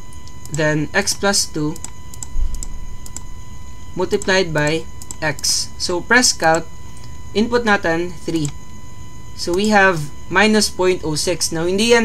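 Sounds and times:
computer input clicks: 0:00.1 - 0:03.3, 0:04.1 - 0:05.5, 0:08.3 - 0:08.7.

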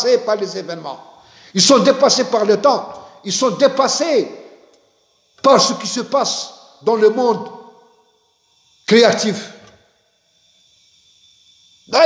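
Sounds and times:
man speaking: 0:00.0 - 0:04.4, 0:05.4 - 0:07.5, 0:08.9 - 0:09.6.

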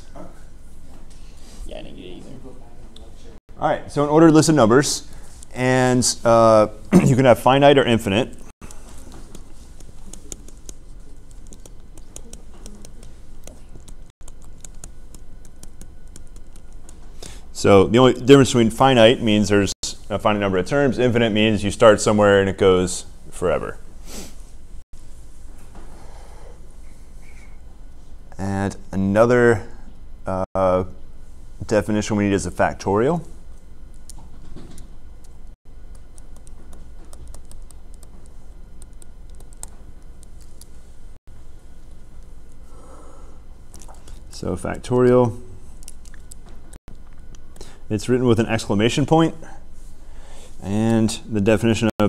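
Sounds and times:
low room hum: 0:00.0 - 0:52.0.

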